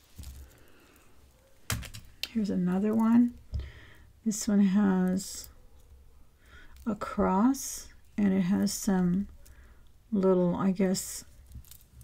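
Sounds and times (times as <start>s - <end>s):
beads clicking together: 0.0s - 4.0s, 5.0s - 10.3s, 11.2s - 12.0s.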